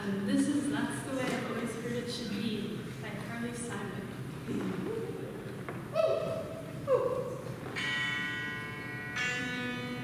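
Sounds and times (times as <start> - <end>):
falling vocal whoop: 5.9 - 7.4.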